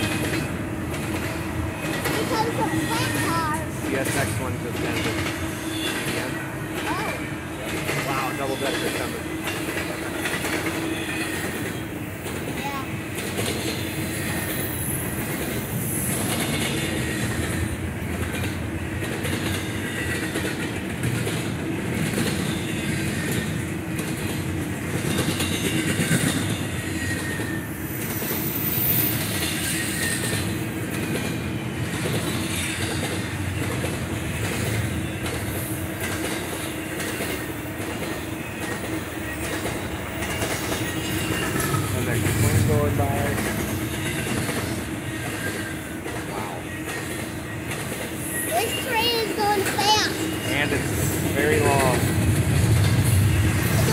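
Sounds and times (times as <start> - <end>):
clickety-clack of rail joints: 0.0 - 53.9
freight train wheels rumbling: 0.0 - 53.9.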